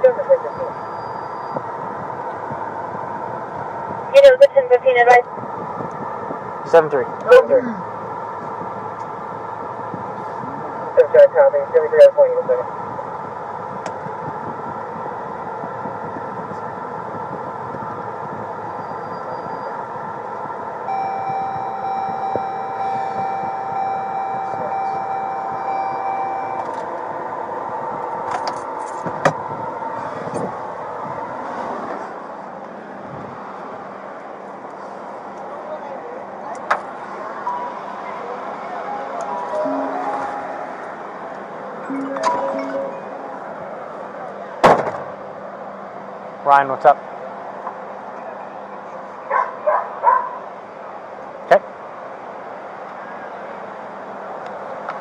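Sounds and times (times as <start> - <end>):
car engine and road noise: 0.0 - 55.0
steady electronic tone: 20.9 - 27.7, 39.5 - 44.0.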